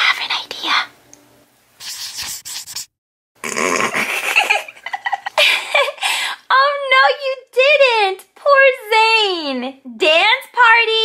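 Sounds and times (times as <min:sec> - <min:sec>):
person whispering: 0:00.0 - 0:00.9.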